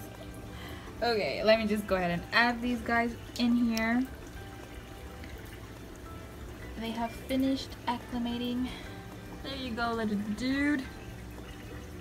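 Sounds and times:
soft background music: 0:00.0 - 0:12.0
water trickling in aquarium: 0:00.0 - 0:12.0.

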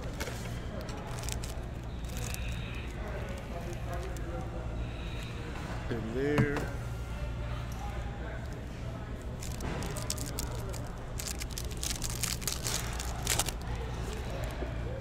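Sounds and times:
foil wrapper tearing and crinkling: 0:00.0 - 0:04.2, 0:09.3 - 0:14.6.

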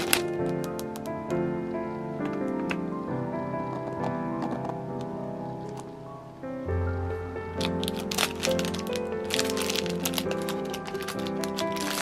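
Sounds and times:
plastic bag crinkling: 0:00.0 - 0:01.2, 0:07.6 - 0:12.0
background music: 0:00.0 - 0:12.0.

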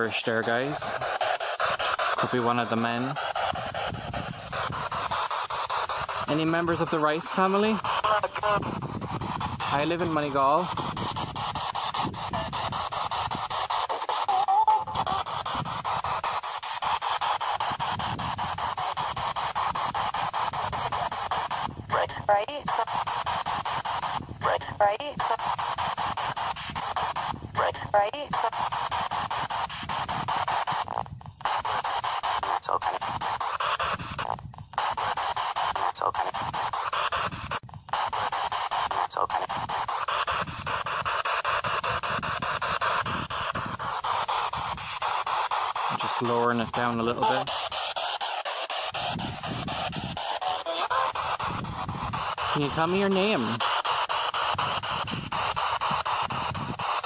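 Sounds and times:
radio voices: 0:00.0 - 0:30.8, 0:31.5 - 0:57.0
radio static hiss: 0:00.0 - 0:57.0.

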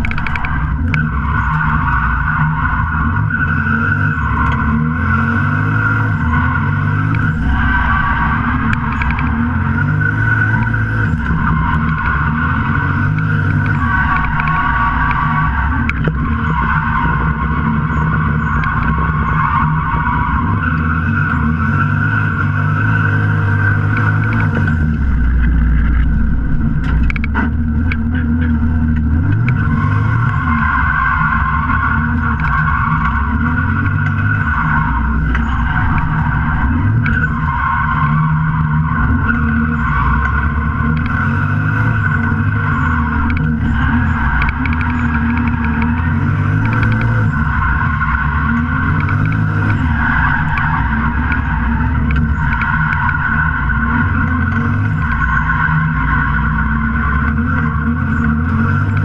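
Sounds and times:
car engine revving: 0:00.0 - 0:59.0
tyres squealing: 0:27.2 - 0:59.0.

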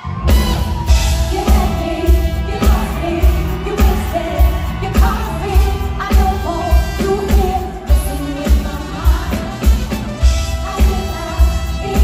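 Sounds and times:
live band playing pop-soul: 0:00.0 - 0:12.0
woman singing: 0:01.0 - 0:12.0.

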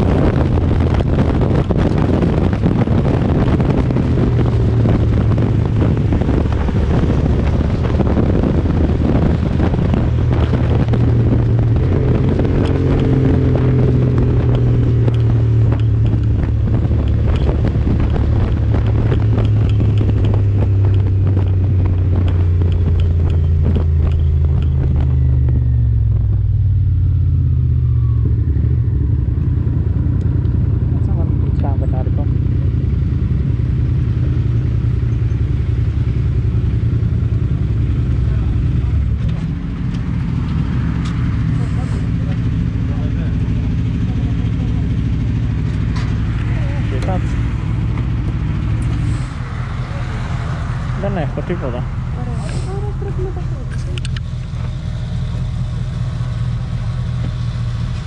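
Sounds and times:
motorcycle engine slowing and idling: 0:00.0 - 0:58.0.

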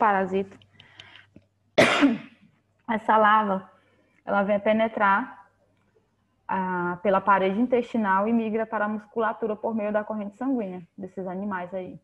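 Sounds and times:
woman coughing: 0:01.8 - 0:02.4.

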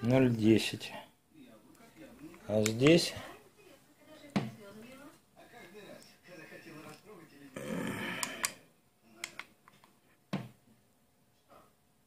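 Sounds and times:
breathy vocal sound: 0:07.6 - 0:08.6.

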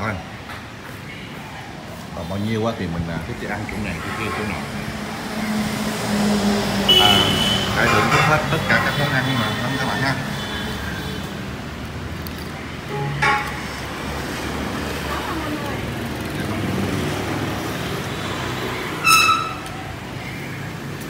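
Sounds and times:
rumble of passing vehicles: 0:00.0 - 0:21.0
vehicle horn beeping: 0:06.8 - 0:11.3, 0:12.9 - 0:13.7, 0:18.9 - 0:19.8.

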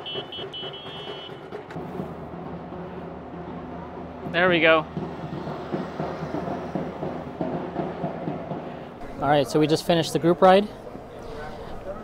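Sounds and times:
traffic: 0:00.0 - 0:12.0.

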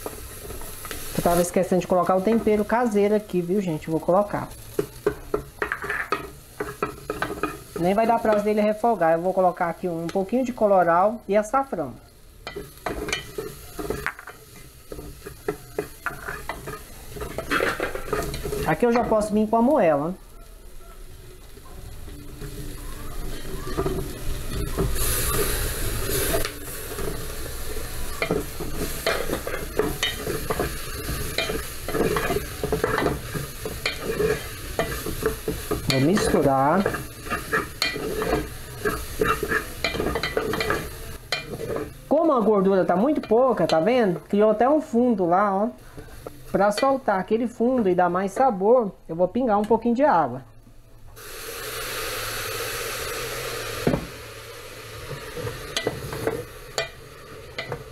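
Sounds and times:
food sizzling in a pot: 0:00.0 - 0:49.2, 0:51.2 - 0:57.9
spoon scraping and knocking pot: 0:04.8 - 0:08.5, 0:12.5 - 0:19.3, 0:28.2 - 0:42.0.

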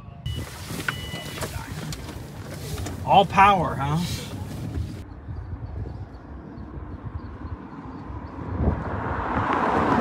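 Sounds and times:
engine and road rumble: 0:00.0 - 0:10.0
short high beep: 0:00.2 - 0:01.5.

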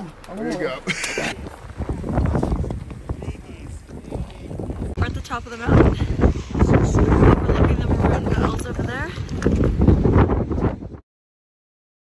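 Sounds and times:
wind buffeting microphone: 0:00.6 - 0:11.0.

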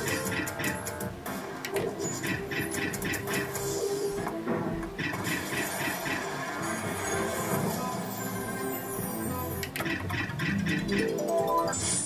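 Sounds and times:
slot machine music: 0:00.0 - 0:12.0.

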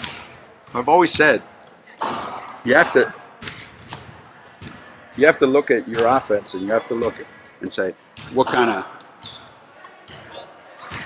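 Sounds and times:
basketballs bouncing on wooden floor: 0:08.1 - 0:11.0.

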